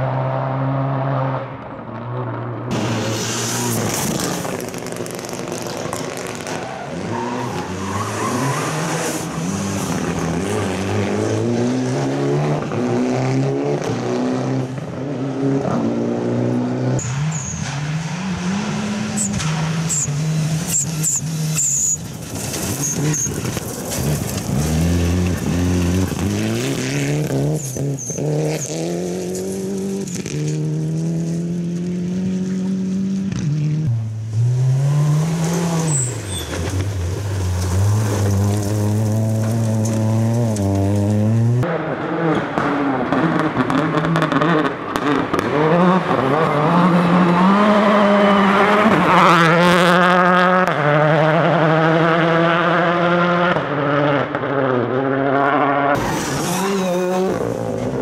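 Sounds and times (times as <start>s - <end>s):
rally car engines at full throttle: 0.0s - 58.0s.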